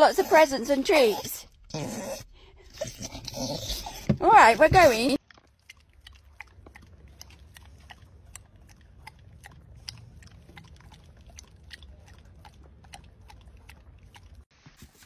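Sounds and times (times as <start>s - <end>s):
dog licking wetly: 4.7s - 14.5s.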